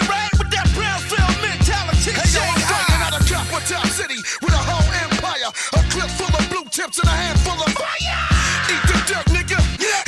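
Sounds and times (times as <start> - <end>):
rapping over a beat: 0.0 - 10.0.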